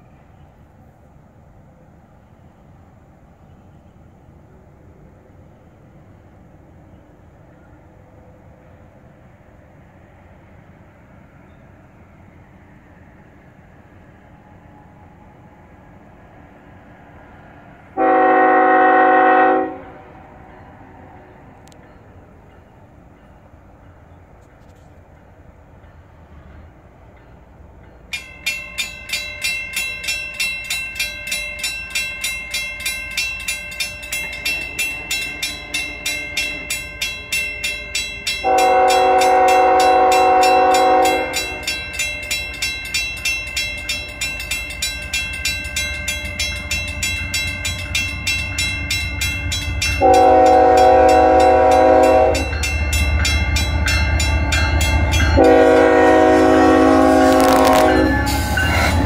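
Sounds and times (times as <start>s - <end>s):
low rumble of train: 0.0s - 59.0s
crossing warning bell ringing: 13.6s - 24.2s, 25.1s - 59.0s
locomotive horn blast: 18.0s - 20.2s, 38.4s - 41.7s, 50.0s - 52.6s, 55.1s - 59.0s.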